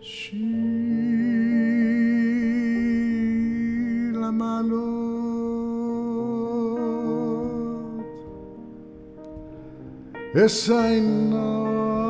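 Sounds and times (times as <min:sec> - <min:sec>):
blues piano chords: 0:00.0 - 0:12.0.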